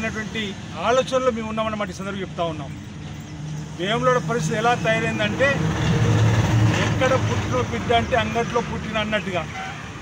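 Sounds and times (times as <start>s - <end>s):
man speaking: 0.0s - 2.8s, 3.7s - 5.7s, 6.8s - 9.7s
vehicle engine rumble: 0.0s - 10.0s.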